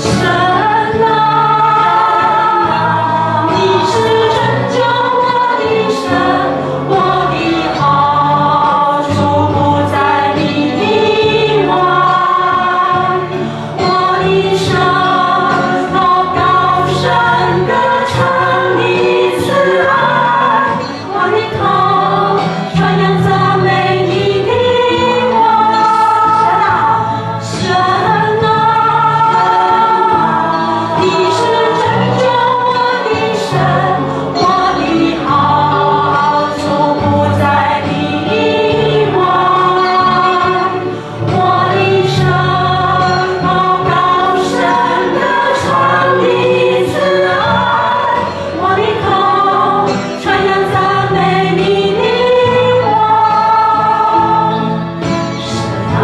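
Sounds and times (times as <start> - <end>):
bass: 0.0 - 56.0
group of voices singing: 0.0 - 56.0.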